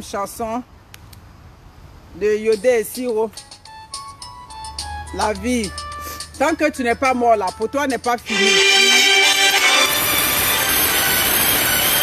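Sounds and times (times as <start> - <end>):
loud steady rushing noise: 8.3 - 12.0.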